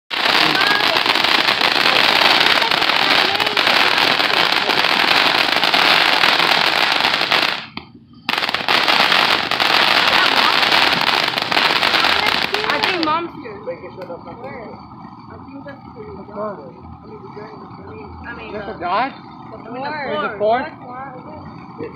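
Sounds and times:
firework fountain crackling: 0:00.1 - 0:21.9.

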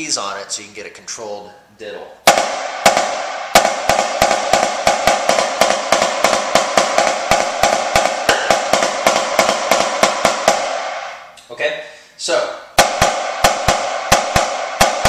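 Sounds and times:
snare drum double strokes: 0:02.3 - 0:11.4, 0:12.8 - 0:15.0.

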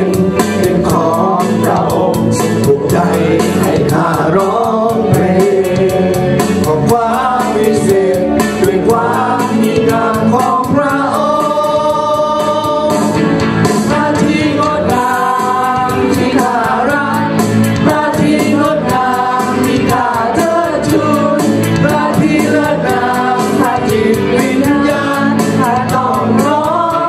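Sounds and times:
instrumental accompaniment: 0:00.0 - 0:27.0
voices singing worship song: 0:00.0 - 0:27.0.

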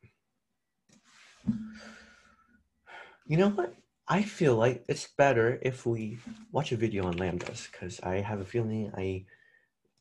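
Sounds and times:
person breathing in: 0:01.6 - 0:03.2.

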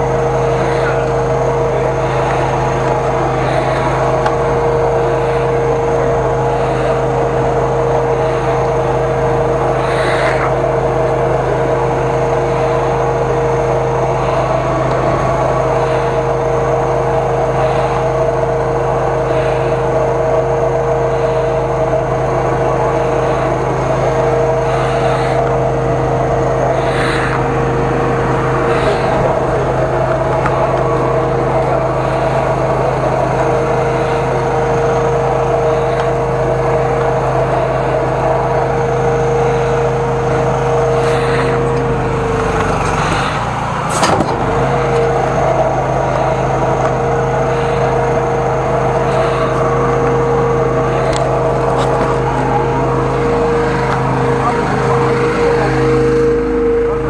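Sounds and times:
drain jetter engine and pump drone: 0:00.0 - 0:57.0.

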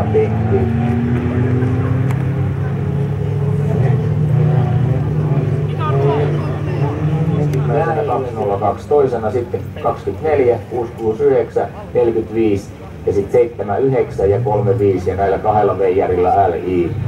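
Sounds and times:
race car engines droning: 0:00.0 - 0:17.0.

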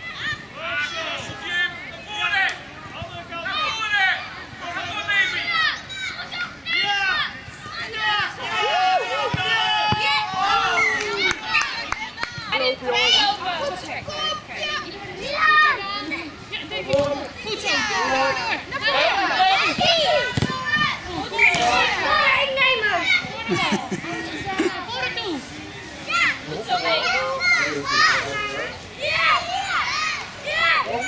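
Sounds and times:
children shouting: 0:03.4 - 0:13.5, 0:14.1 - 0:25.4, 0:26.0 - 0:31.0.

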